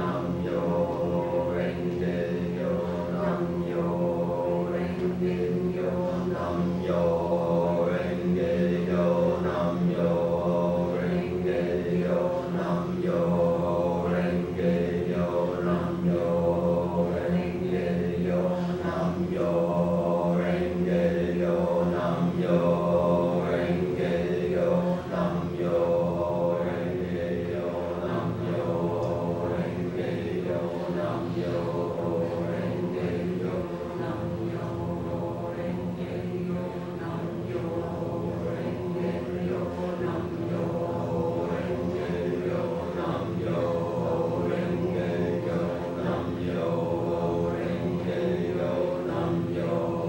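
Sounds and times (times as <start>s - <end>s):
low vocal chant drone: 0.0s - 50.0s.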